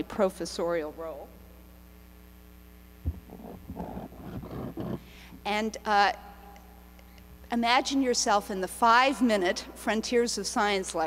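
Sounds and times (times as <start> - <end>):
microphone thump: 3.0 - 5.0
microphone handling rubbing: 3.0 - 5.5.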